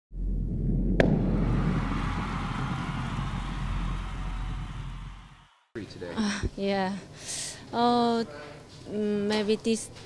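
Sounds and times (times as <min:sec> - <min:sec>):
sustained low rumble: 0:00.1 - 0:05.7
sharp hit: 0:00.5 - 0:05.6.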